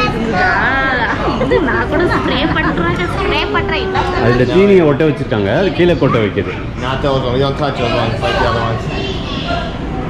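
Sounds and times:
overlapping chatter of voices: 0:00.0 - 0:10.0.

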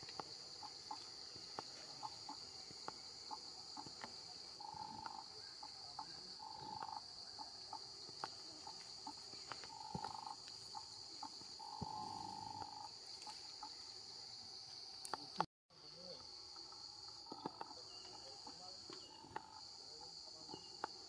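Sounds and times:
high-pitched insect drone: 0:00.0 - 0:21.0
low flat buzzing calls: 0:00.0 - 0:21.0.

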